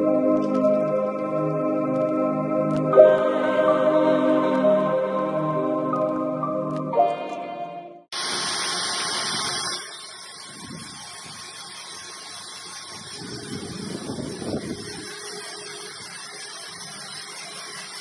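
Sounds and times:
background music: 0.0 - 8.1
vibrating sieve grainy hiss: 8.2 - 18.0.

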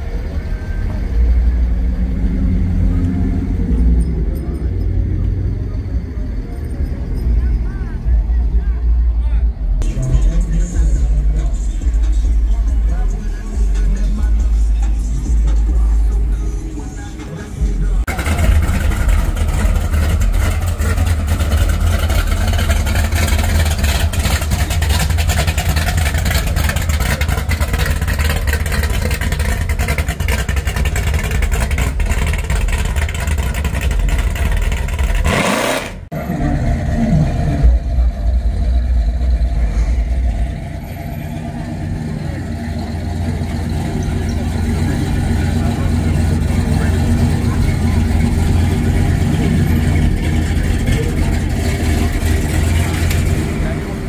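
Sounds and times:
heavy low rumble: 0.0 - 35.3, 36.0 - 54.0
cars rolling by with engines running: 0.0 - 54.0
indistinct voices: 0.0 - 54.0.

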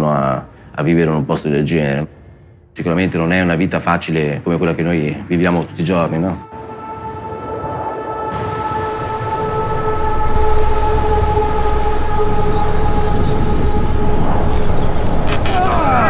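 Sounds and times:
blizzard wind rushing: 6.4 - 16.0
man shouting: 15.4 - 16.0.

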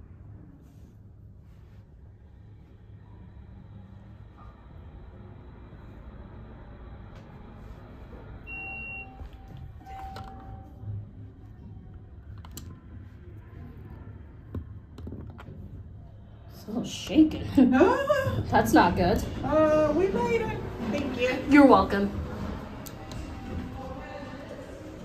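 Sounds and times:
elevator car rumbling: 3.1 - 13.2, 14.6 - 25.0
elevator arrival beep: 8.4 - 11.0.

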